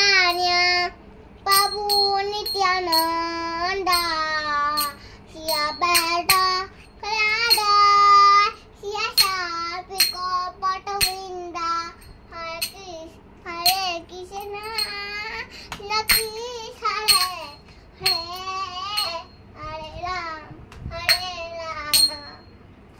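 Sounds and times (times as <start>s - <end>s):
girl singing a chant: 0.0s - 22.5s.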